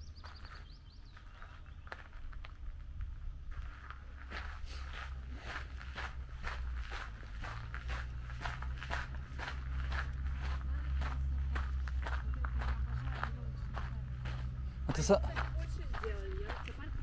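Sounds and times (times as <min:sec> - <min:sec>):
footsteps on gravel: 0:00.0 - 0:17.0
steady low rumble: 0:00.0 - 0:17.0.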